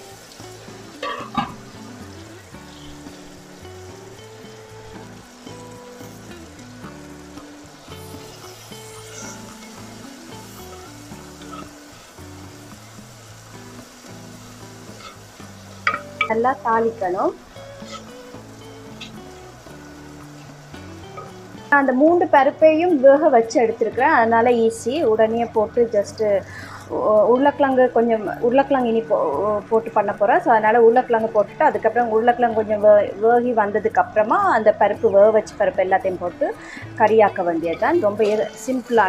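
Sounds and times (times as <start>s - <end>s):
vegetables sizzling in oil: 0.0s - 39.0s.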